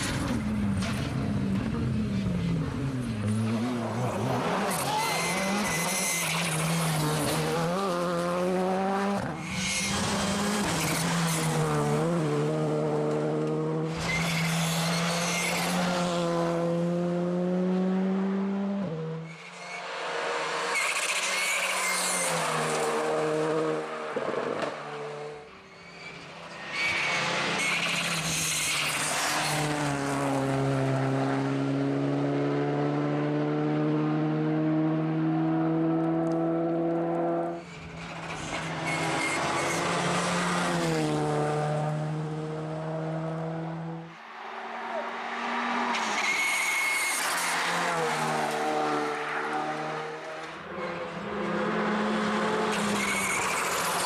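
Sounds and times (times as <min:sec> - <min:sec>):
rally car engine revving through gears: 0:00.0 - 0:19.3, 0:27.0 - 0:44.0.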